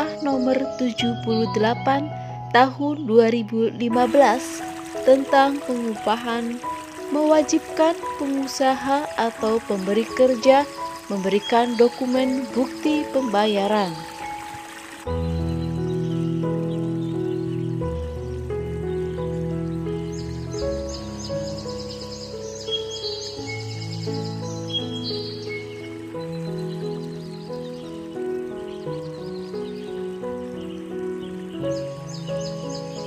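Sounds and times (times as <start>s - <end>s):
calm background music: 0.0s - 33.0s
bird chirps: 4.1s - 33.0s.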